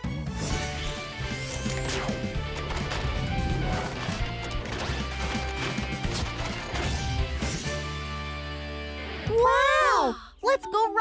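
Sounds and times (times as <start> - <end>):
background music: 0.0 - 11.0
mechanical clanks and impacts: 1.5 - 7.4.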